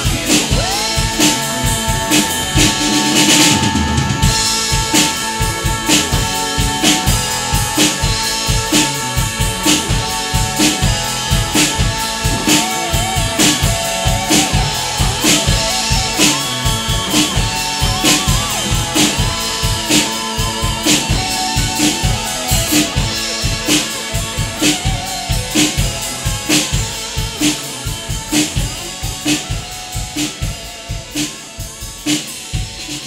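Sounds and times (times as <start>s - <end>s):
drum kit playing rock beat: 0.0s - 33.0s
recorded rock song: 0.0s - 33.0s
washing cymbals: 0.0s - 33.0s.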